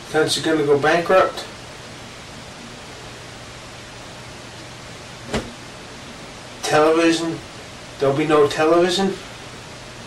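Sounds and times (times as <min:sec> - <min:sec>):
background hiss: 0:00.0 - 0:10.0
short knock: 0:05.3 - 0:05.6.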